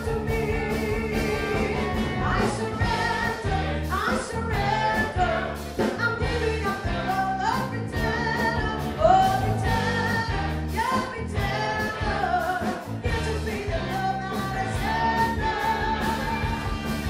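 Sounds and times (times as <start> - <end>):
live band playing: 0.0 - 17.0
woman singing lead: 0.0 - 17.0.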